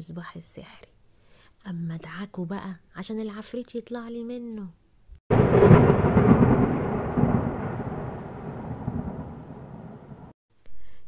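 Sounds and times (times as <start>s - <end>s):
rumbling crackling magic effect: 5.3s - 10.3s.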